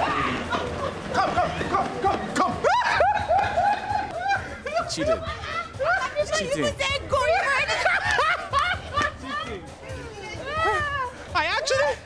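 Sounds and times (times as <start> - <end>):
people shouting excitedly: 0.0 - 8.5, 9.2 - 11.7
people laughing: 0.0 - 12.0.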